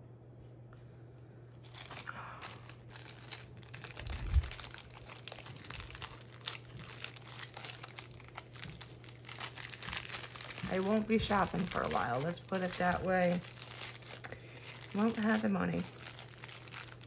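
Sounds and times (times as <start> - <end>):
plastic packaging crinkling: 1.6 - 17.0.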